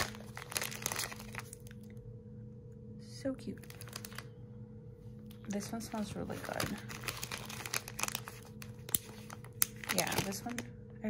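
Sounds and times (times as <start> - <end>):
cellophane bag crinkling: 0.0 - 1.9, 3.6 - 4.3, 5.4 - 10.7.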